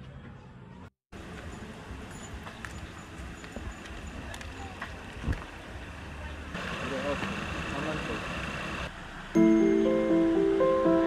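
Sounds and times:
outdoor background noise: 0.0 - 11.0
footsteps on pavement: 2.4 - 5.6.

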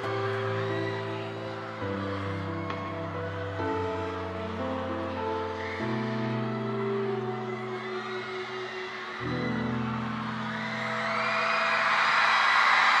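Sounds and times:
slow ballad chords: 0.0 - 12.0
crowd cheering: 0.0 - 13.0.

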